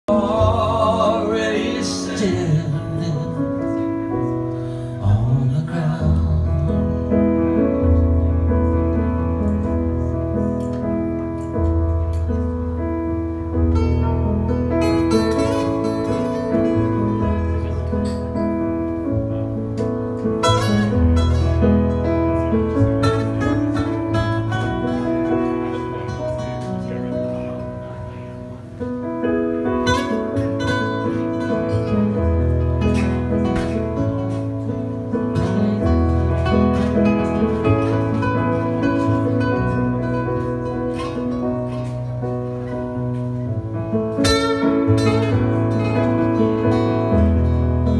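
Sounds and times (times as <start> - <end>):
acoustic guitar: 0.0 - 47.9
electric keyboard bass notes: 0.0 - 47.9.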